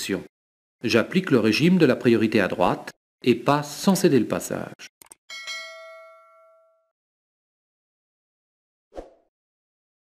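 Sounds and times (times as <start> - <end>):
bell-like ding: 5.3 - 7.0.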